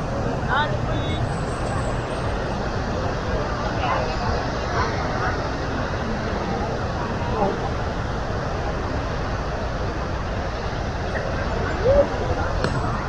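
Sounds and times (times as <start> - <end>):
crowd chatter: 0.0 - 13.0
steady low rumble: 0.0 - 13.0.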